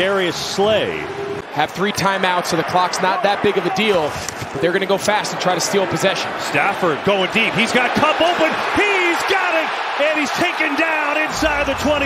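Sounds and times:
man commentating: 0:00.0 - 0:12.0
stadium crowd noise: 0:00.0 - 0:12.0.

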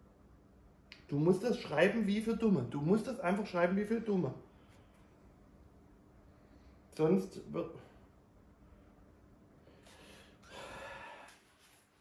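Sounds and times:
man breathing: 0:09.6 - 0:11.8.

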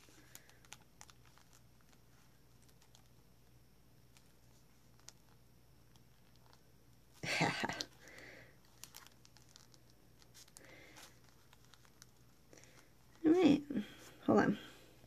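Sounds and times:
plastic rustle: 0:00.0 - 0:03.1, 0:07.8 - 0:13.3
thin plastic sheet crinkling: 0:00.0 - 0:03.2, 0:04.1 - 0:14.2.

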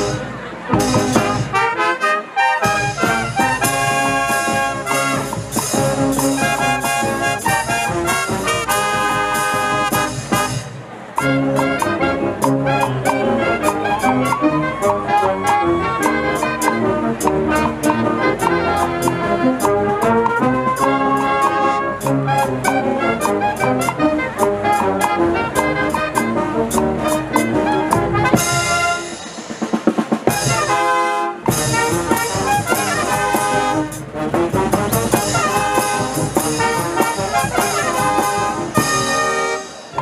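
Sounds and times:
brass band playing: 0:00.0 - 0:40.0.

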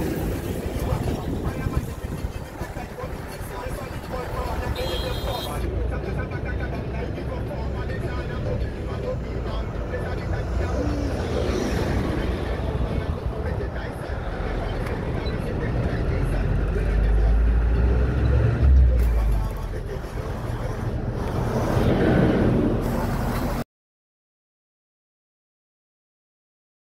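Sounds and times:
people's voices in background: 0:00.0 - 0:21.7
trucks and cars passing: 0:00.0 - 0:23.6.

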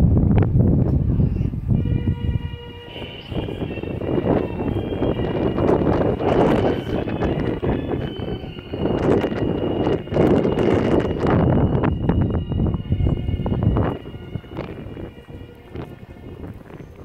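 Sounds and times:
wind buffeting microphone: 0:00.0 - 0:17.0
faint steady high tone: 0:01.4 - 0:17.0.

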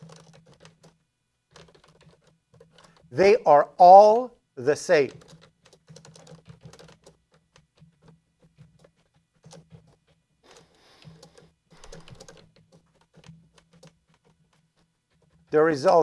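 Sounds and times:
typing on keyboard: 0:00.0 - 0:03.1, 0:05.0 - 0:16.0
faint steady low hum: 0:00.0 - 0:16.0.

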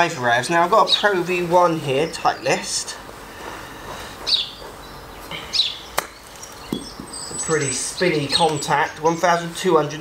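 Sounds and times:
bird chirping: 0:04.2 - 0:09.4.

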